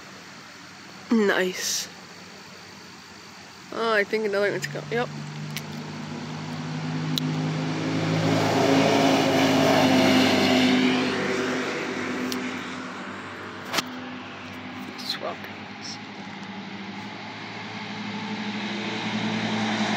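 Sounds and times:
utility vehicle engine passing by: 4.0s - 19.9s.

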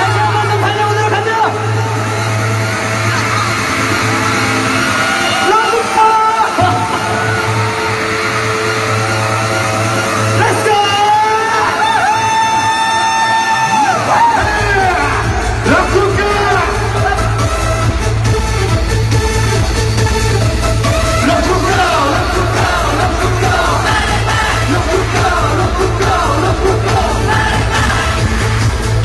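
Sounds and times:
amplified voices singing and calling: 0.0s - 29.0s
live pop concert music: 0.0s - 29.0s.

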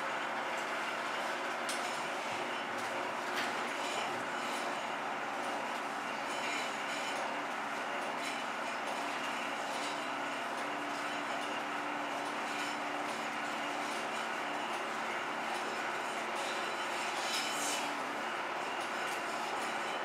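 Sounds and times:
film projector whirring: 0.0s - 20.0s.

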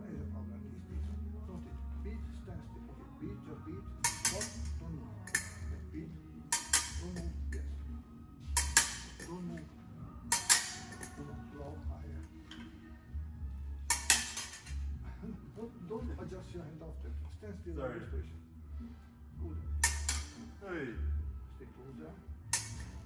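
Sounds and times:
steel blades clashing: 4.0s - 5.7s, 6.5s - 7.6s, 8.6s - 9.4s, 10.3s - 11.2s, 13.9s - 14.8s, 19.8s - 20.4s, 22.6s - 23.0s.

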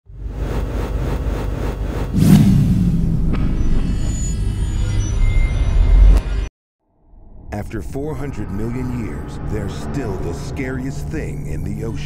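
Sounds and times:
deep rumble with pulsing beat: 1.0s - 4.3s
sustained low drone: 2.0s - 6.2s
sweeping whoosh: 2.1s - 4.2s
sharp hit: 2.1s - 4.3s.

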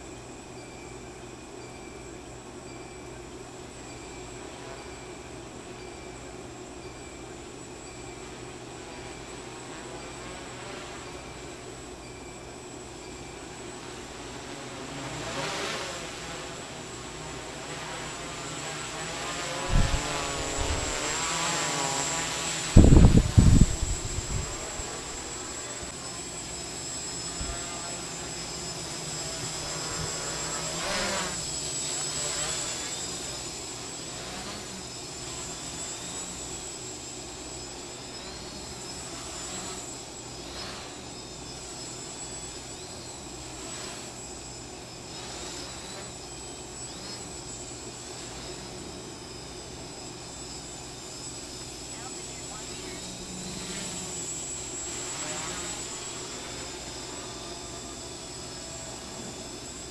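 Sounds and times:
quadcopter motors buzzing: 0.0s - 59.9s.

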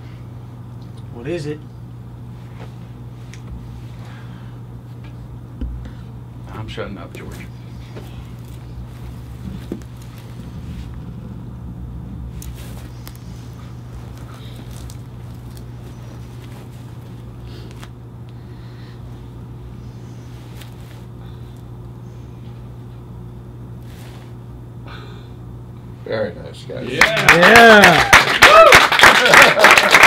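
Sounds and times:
low room hum: 0.0s - 30.0s
faint clicks and rustles: 12.3s - 18.4s.

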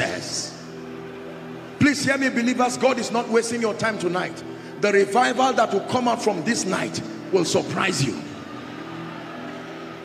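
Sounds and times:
soft background music chord: 0.0s - 10.0s.

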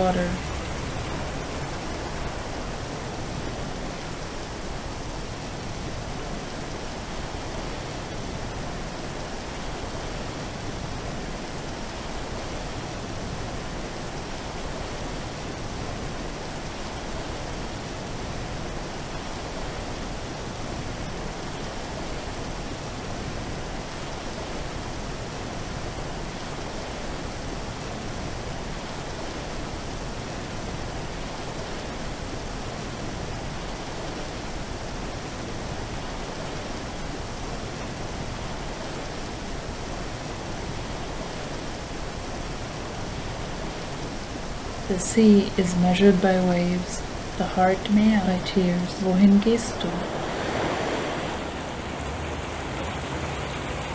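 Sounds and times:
steady rushing water-like noise: 0.0s - 53.9s.

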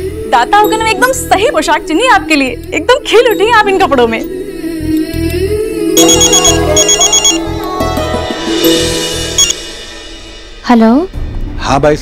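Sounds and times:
background music: 0.0s - 12.0s
phone ringtone trill: 6.0s - 7.4s, 9.4s - 9.6s.

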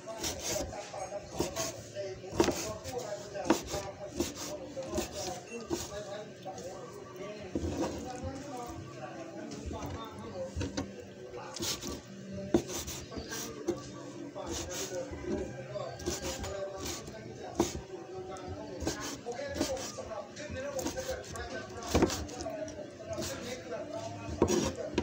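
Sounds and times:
knife scraping on board: 0.1s - 6.0s, 7.5s - 8.3s, 11.5s - 13.8s, 14.4s - 17.8s, 18.8s - 22.5s, 23.1s - 25.0s.

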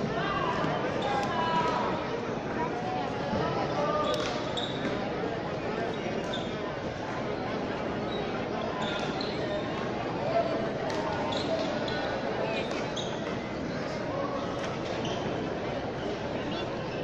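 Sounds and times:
murmur of crowd voices: 0.0s - 17.0s
sneaker squeaks on court: 4.0s - 5.0s, 11.1s - 13.4s.

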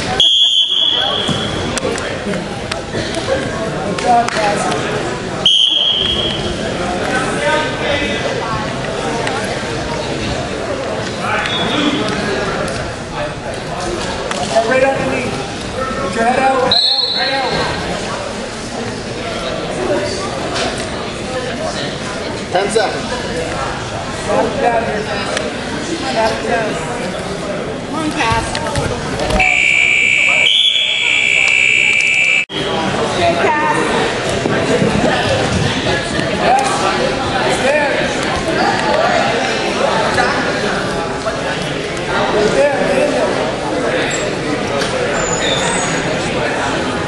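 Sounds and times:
voices calling out in a hall: 0.0s - 47.0s
scoreboard buzzer tone: 29.4s - 32.5s.

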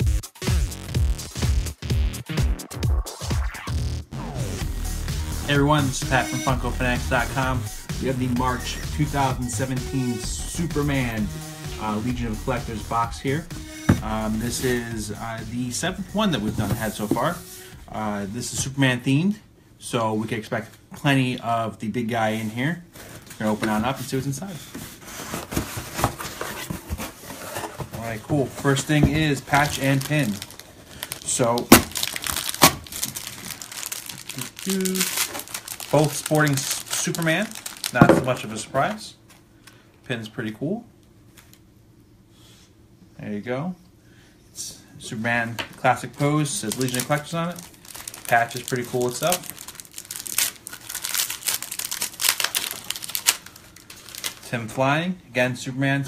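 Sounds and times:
cardboard rustling and scraping: 12.5s - 17.5s, 22.9s - 30.8s
plastic bag crinkling: 27.4s - 39.0s, 45.7s - 54.5s.

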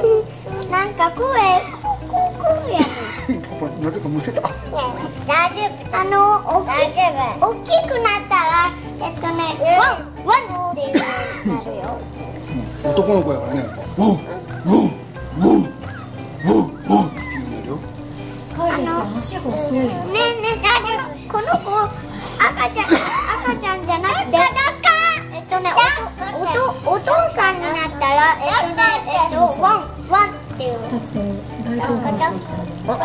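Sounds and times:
other voices: 0.0s - 33.0s
young child making wordless sounds: 18.6s - 31.0s.

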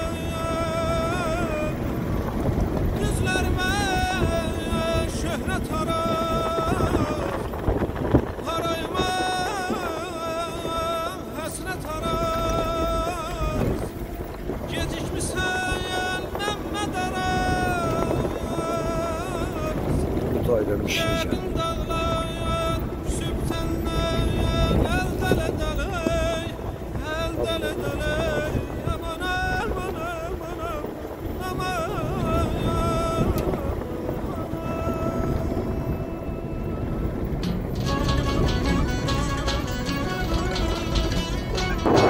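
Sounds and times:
wind buffeting microphone: 0.0s - 42.0s
wavering held melody: 8.3s - 42.0s.

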